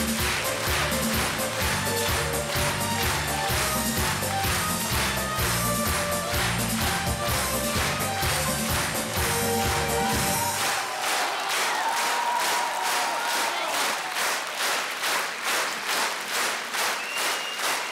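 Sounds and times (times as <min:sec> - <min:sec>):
music with bass line: 0:00.0 - 0:10.6
audience clapping in unison: 0:00.0 - 0:17.9.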